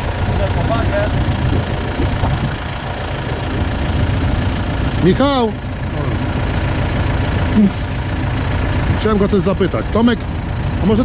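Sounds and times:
tractor engine idling: 0.0s - 11.0s.

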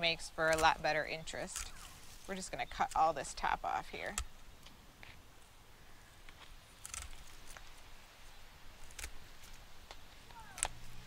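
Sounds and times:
hand pruners snipping stems: 0.2s - 4.3s, 6.4s - 7.8s, 8.8s - 11.0s.

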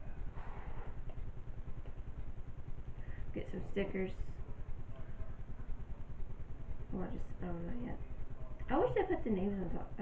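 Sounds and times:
low fluttering rumble: 0.0s - 10.0s.

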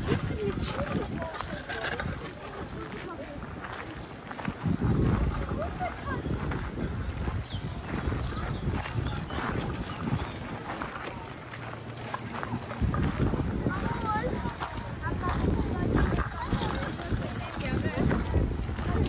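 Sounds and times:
footsteps on gravel: 0.0s - 19.0s
people's voices: 0.0s - 19.0s.

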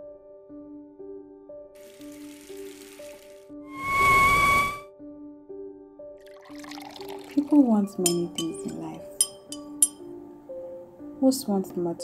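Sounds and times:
soft background music: 0.0s - 12.0s
teaspoon clinking against mug: 7.8s - 10.0s.

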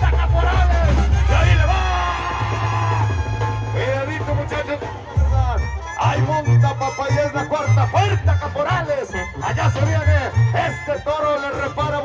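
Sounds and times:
brass band playing: 0.0s - 12.0s
tuba bass line: 0.0s - 12.0s.

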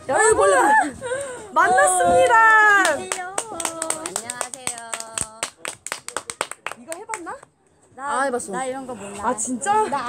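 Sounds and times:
people clapping: 2.2s - 7.5s.

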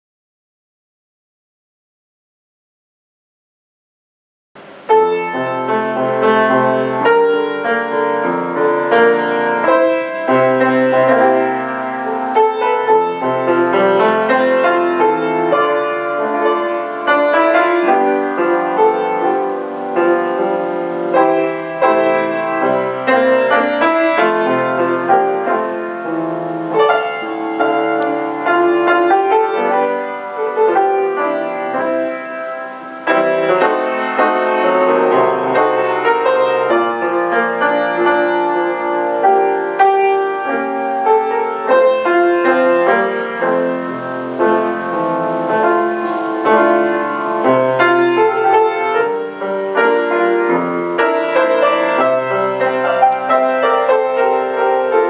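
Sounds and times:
grand piano playing chords: 4.6s - 55.0s.

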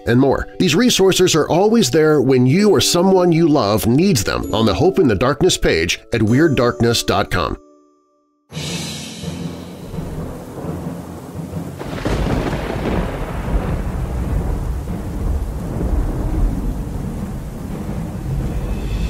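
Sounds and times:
low music drone: 8.5s - 19.0s
rain: 9.2s - 19.0s
rolling thunder: 9.2s - 19.0s.

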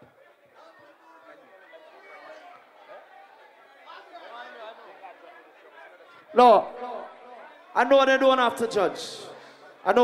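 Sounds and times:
faint background chatter: 0.0s - 7.8s.

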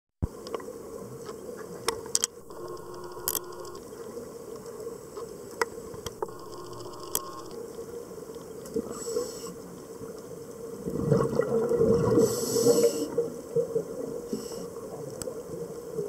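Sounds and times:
sharp clicks and crackling: 2.2s - 3.8s, 6.0s - 7.6s
underwater low hum and hiss: 11.7s - 16.0s.

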